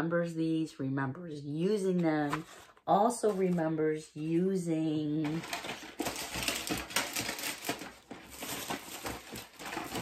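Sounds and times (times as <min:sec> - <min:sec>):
plastic packaging rustling: 0:05.2 - 0:10.0.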